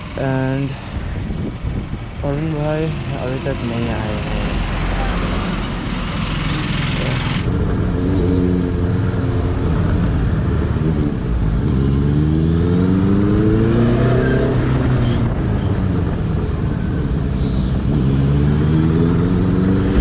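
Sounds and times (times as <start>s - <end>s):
motorcycle engine accelerating: 18.0s - 20.0s.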